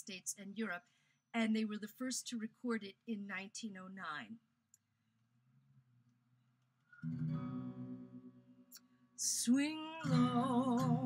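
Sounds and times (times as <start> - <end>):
acoustic guitar chord ringing: 6.9 - 8.7, 10.0 - 11.0.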